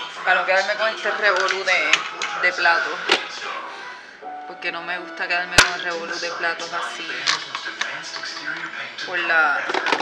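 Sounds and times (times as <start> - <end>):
television film music: 0.0 - 10.0
voices from television: 0.0 - 10.0.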